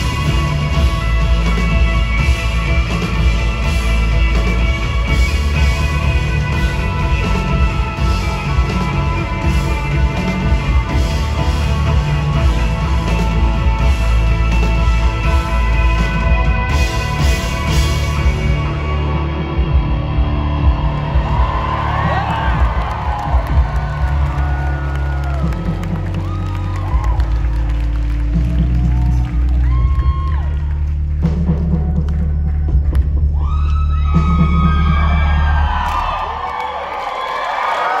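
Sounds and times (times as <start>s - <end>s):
live rock band playing: 0.0s - 33.1s
audience cheering: 16.0s - 38.0s.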